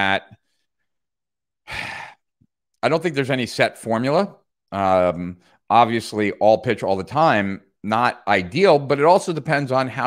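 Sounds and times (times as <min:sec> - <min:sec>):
man sighing: 0:01.6 - 0:02.3.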